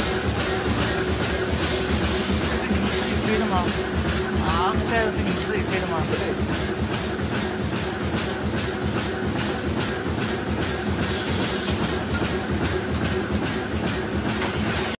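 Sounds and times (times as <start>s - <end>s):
machine clattering: 0.0s - 15.0s
machine hum: 0.0s - 15.0s.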